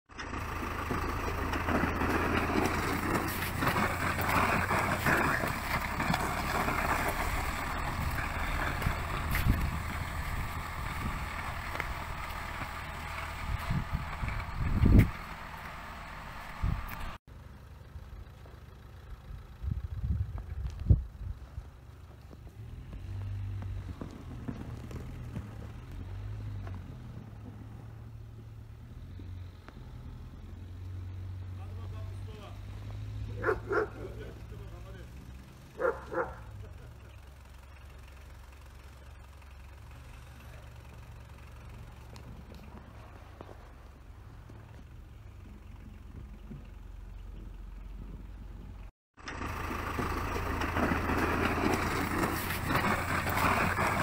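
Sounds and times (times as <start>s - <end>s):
snow blade scraping road: 0.1s - 17.2s, 21.3s - 31.0s, 31.6s - 47.2s, 49.2s - 54.0s
tractor engine humming: 0.1s - 54.0s.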